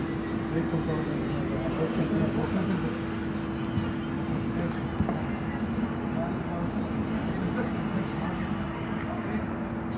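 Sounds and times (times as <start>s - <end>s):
steady hum with constant tone: 0.0s - 9.9s.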